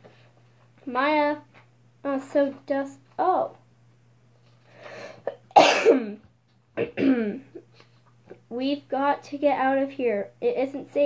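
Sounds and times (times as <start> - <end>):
girl coughing: 5.3 - 6.2, 6.8 - 7.6.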